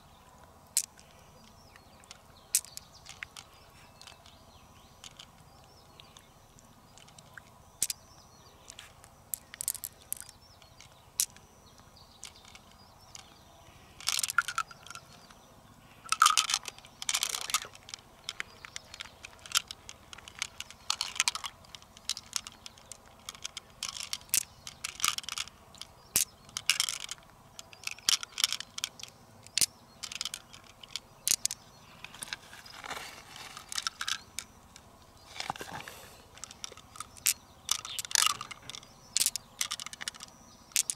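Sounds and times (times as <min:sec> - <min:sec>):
small sharp clicks: 0:00.4 - 0:13.4, 0:16.0 - 0:40.9.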